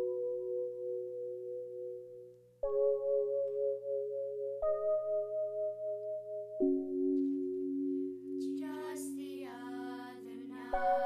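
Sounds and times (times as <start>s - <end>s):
soft bell-like chord: 0.0s - 11.0s.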